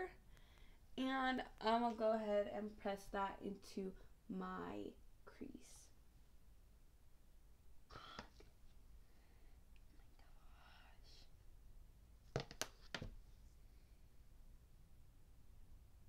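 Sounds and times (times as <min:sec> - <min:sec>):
faint whispering: 0:09.8 - 0:11.4.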